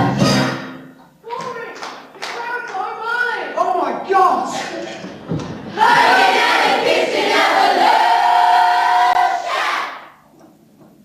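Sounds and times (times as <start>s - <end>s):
music: 0.0s - 1.1s
audience clapping: 1.3s - 3.0s.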